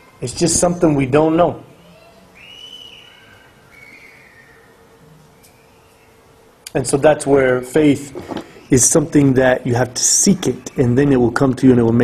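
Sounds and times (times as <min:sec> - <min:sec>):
high whistle-like tones: 0:02.0 - 0:06.3.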